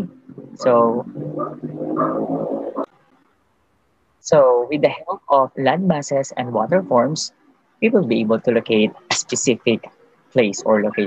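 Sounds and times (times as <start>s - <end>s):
man's drawn-out hesitation sound: 0.0s - 2.7s, 4.2s - 11.0s.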